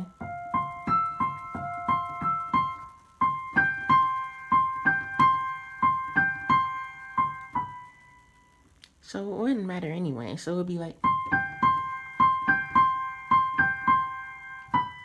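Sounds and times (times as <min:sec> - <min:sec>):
digital piano melody: 0:00.0 - 0:15.0.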